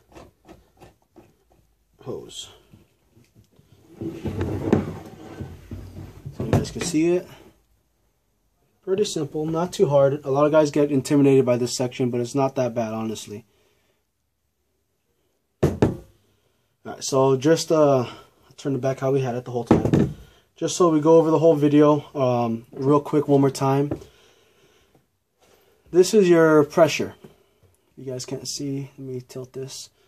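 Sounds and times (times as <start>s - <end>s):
man speaking: 2.0s - 2.7s, 6.3s - 7.5s, 8.8s - 13.4s, 16.9s - 19.9s, 20.6s - 24.0s, 25.9s - 27.2s.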